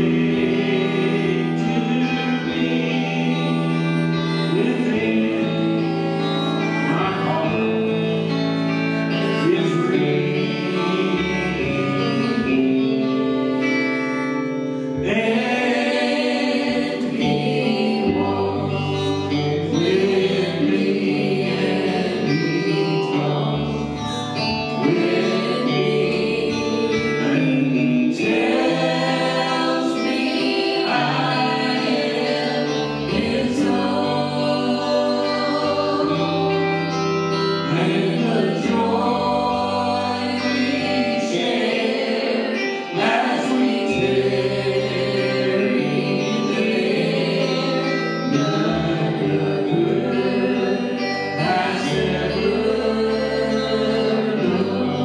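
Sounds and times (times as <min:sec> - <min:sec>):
bass guitar: 0:00.0 - 0:55.0
electric guitar: 0:00.0 - 0:55.0
person singing: 0:00.0 - 0:55.0
small live band playing: 0:00.0 - 0:55.0.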